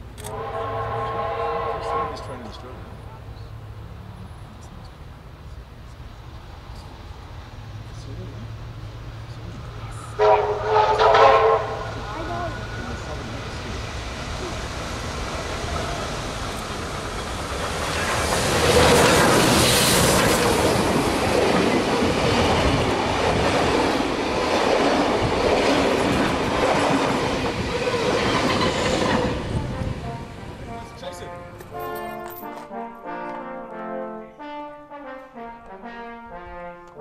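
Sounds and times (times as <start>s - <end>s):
steam train passing at speed: 0.0s - 32.0s
steam whistle: 0.2s - 2.5s, 10.0s - 12.2s.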